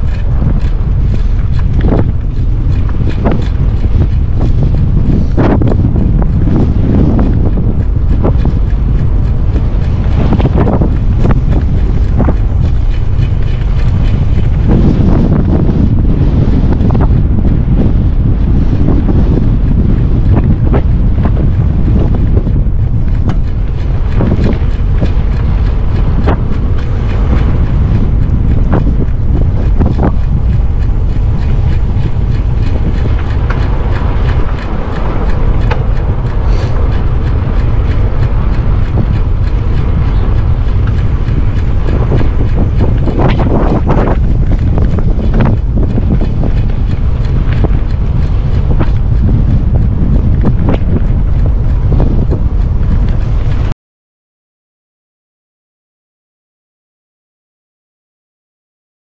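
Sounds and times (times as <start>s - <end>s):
small clicks and rattles: 0.0s - 53.7s
wind buffeting microphone: 0.0s - 53.8s.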